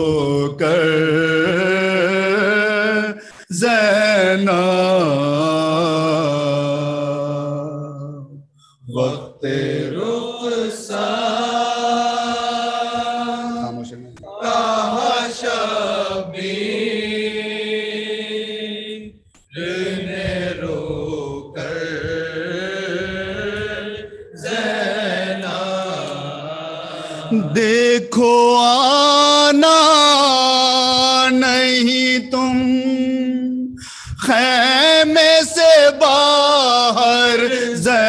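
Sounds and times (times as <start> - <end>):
men chanting a lament in unison: 0.0 - 38.0.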